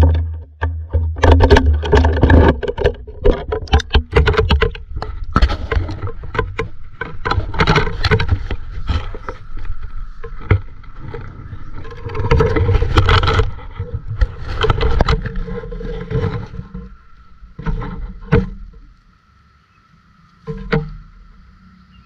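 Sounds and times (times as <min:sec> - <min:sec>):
knocks and scrapes on rock: 0:00.0 - 0:18.9
water splashing: 0:00.0 - 0:22.0.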